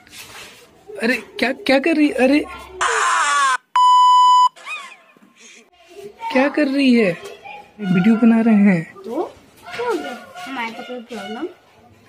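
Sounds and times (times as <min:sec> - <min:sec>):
high-pitched test tone beep: 0:03.8 - 0:04.6.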